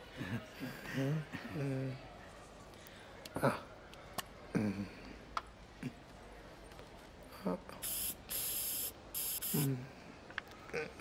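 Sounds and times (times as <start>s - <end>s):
aerosol spray can hissing: 7.8s - 9.7s.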